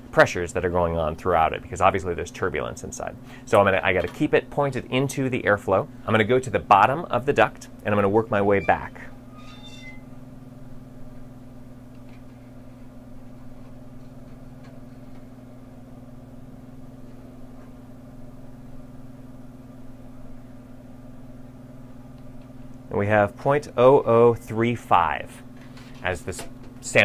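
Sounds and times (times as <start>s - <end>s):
fans humming on metal duct: 0.0s - 27.0s.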